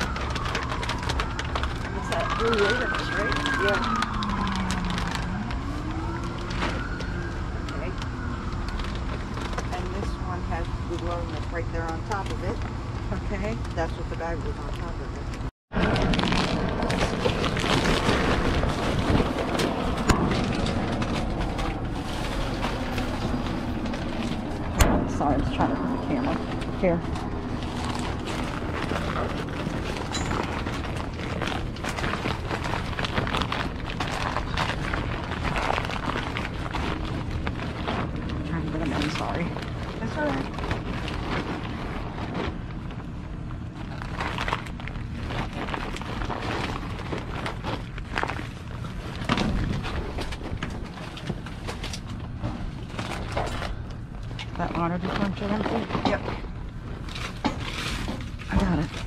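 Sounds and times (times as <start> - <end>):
plastic packaging crinkling: 0.0 - 15.0, 15.8 - 59.0
low hum: 0.0 - 59.0.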